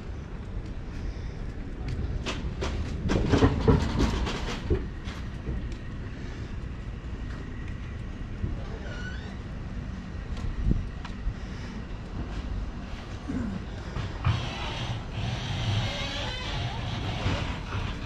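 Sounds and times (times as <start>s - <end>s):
steady low rumble: 0.0s - 18.0s
clattering knocks: 2.3s - 5.3s.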